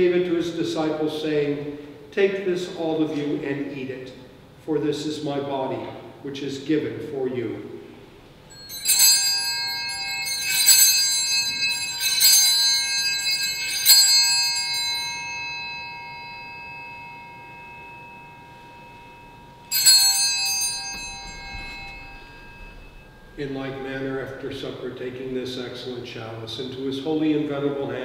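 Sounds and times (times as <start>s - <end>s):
altar bells ringing: 8.3s - 26.7s.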